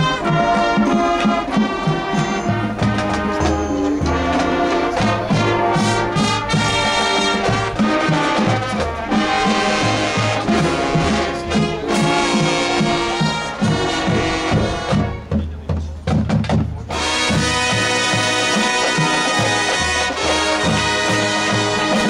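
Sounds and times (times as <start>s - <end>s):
bass notes and drums: 0.0s - 22.0s
marching band playing: 0.0s - 22.0s.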